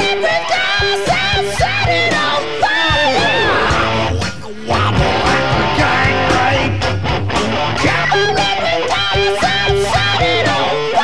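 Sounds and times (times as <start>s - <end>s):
bass guitar: 0.0s - 11.0s
drums: 0.0s - 11.0s
electric guitar riff: 0.0s - 11.0s.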